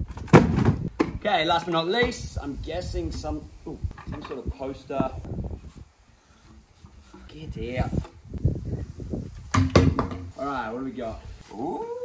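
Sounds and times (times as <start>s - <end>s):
wind rumble on microphone: 2.1s - 6.0s, 6.8s - 10.4s.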